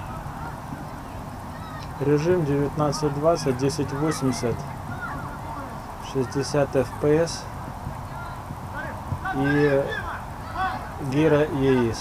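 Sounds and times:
faint distant calls: 0.0 - 12.0.

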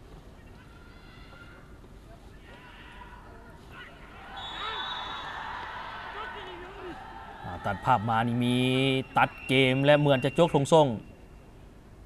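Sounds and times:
faint stadium ambience: 0.0 - 12.0
distant shouts: 0.6 - 10.6.

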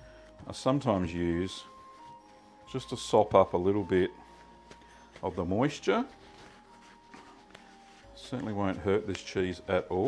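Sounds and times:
soft background music: 0.0 - 10.0
paper towel rubbing cheese rind: 0.9 - 10.0.

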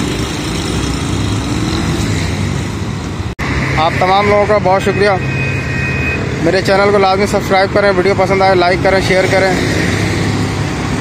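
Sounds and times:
auto-rickshaw engines: 0.0 - 11.0
motorcycle engine: 0.0 - 11.0
road noise: 0.0 - 11.0.

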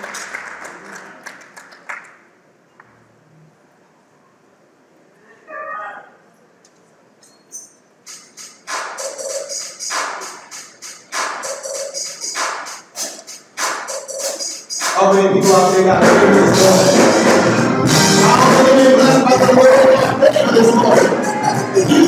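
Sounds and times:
rhythmic hand clapping: 0.0 - 2.2, 8.6 - 15.0
person calling out: 5.2 - 6.2
congregation singing: 15.0 - 22.0.

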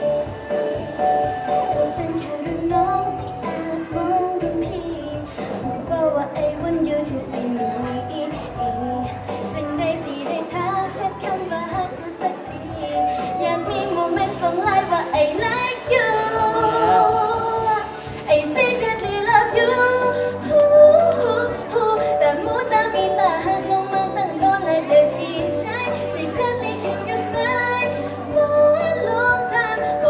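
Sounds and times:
pop backing track over loudspeakers: 0.0 - 30.0
girl singing into microphone: 1.0 - 30.0.

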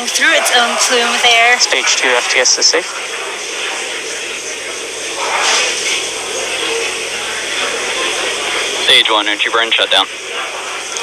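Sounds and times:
radio feed hiss: 0.0 - 11.0
voice callouts: 0.0 - 11.0.

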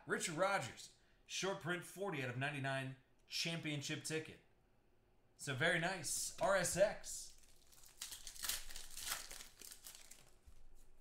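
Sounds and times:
foil wrapper tearing and crinkling: 7.3 - 10.4.

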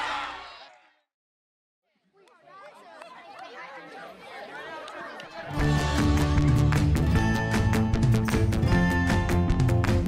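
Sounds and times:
crowd chatter: 1.9 - 7.9.

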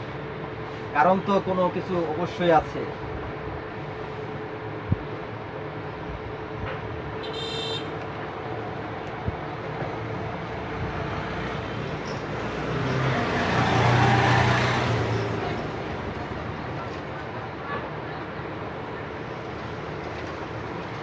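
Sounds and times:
background traffic noise: 0.0 - 21.0
vehicle passing: 9.6 - 17.5.

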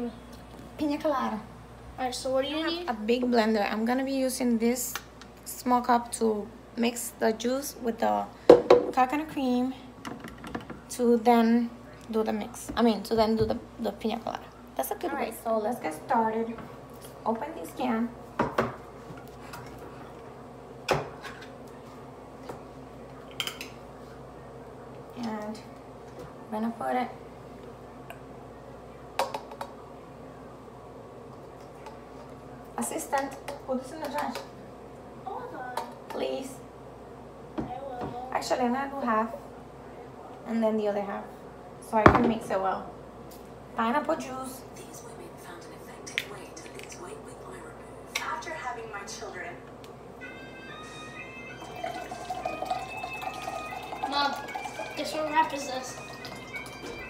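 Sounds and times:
juice pouring into plastic cup: 51.6 - 56.8.

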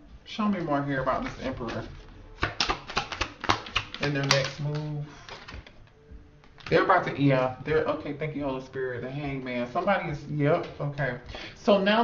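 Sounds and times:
cards being shuffled: 0.6 - 6.8.

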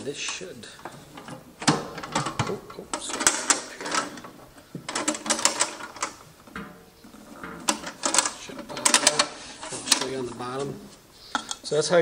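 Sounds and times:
handling of metal box: 0.2 - 11.5
metal latches clicking: 0.3 - 10.6.

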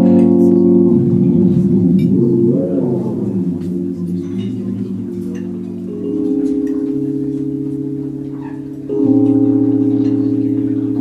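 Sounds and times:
low sustained bass note: 0.0 - 11.0
wavering keyboard chords: 0.0 - 11.0.

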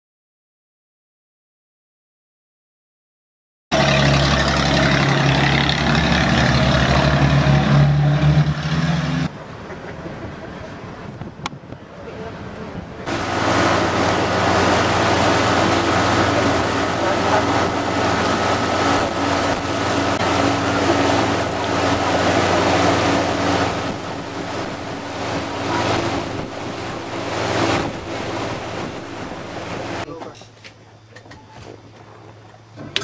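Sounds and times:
water rushing: 3.7 - 11.1, 12.1 - 30.1
boat motor running: 3.7 - 11.3, 12.1 - 33.0
wind buffeting microphone: 10.2 - 30.1.

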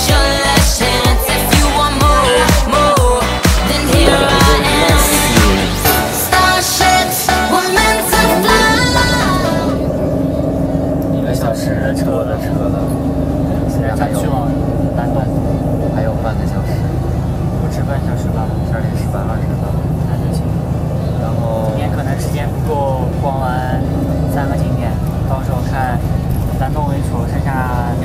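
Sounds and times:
bus rumble inside cabin: 0.0 - 28.0
voices talking: 0.8 - 28.0.

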